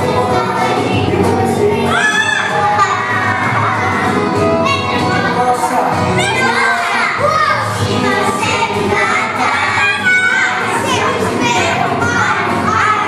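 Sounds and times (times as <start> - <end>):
girls singing karaoke: 0.0 - 13.0
loud backing music: 0.0 - 13.0
children shouting: 1.6 - 13.0.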